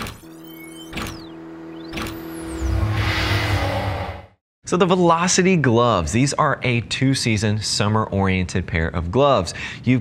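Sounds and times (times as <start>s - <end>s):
held low tone: 1.3s - 4.4s
sweeping whooshes: 1.7s - 4.4s
deep rumble: 2.3s - 4.4s.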